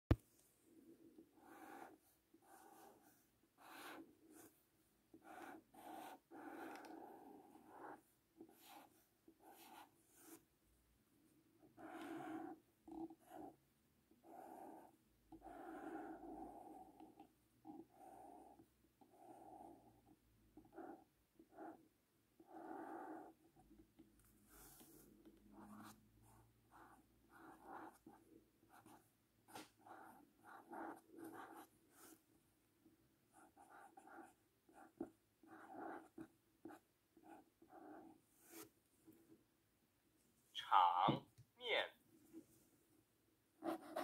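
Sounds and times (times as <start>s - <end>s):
felt-tip pen scratching on paper: 0.8s - 10.4s, 11.6s - 32.3s, 33.3s - 39.2s, 43.6s - 44.0s.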